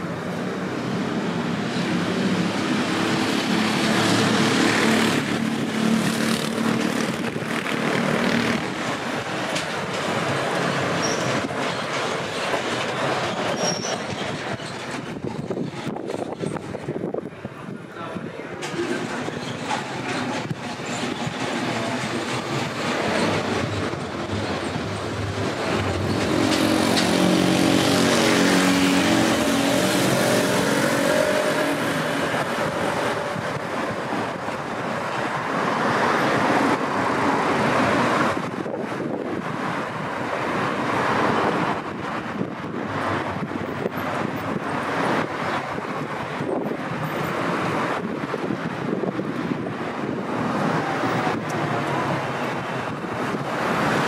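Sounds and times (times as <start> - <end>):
traffic engines droning: 0.0 - 54.0.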